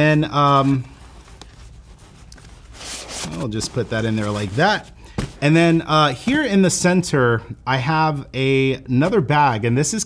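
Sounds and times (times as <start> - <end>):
fabric rubbing: 0.0 - 6.5.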